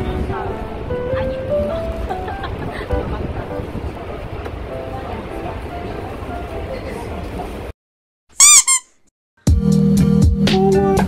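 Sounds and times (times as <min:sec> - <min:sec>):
subway car rumble: 0:00.0 - 0:07.7
high-pitched squeak effect: 0:08.4 - 0:09.0.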